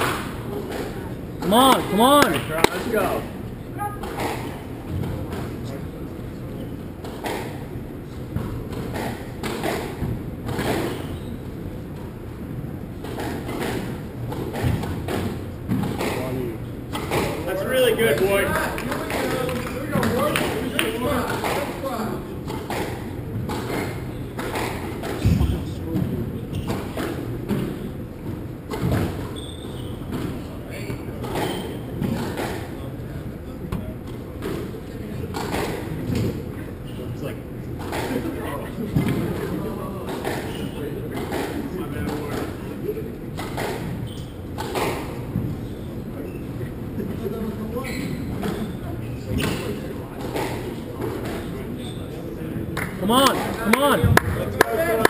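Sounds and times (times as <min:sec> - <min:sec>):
spectators' voices: 0:00.6 - 0:04.7, 0:52.8 - 0:55.0.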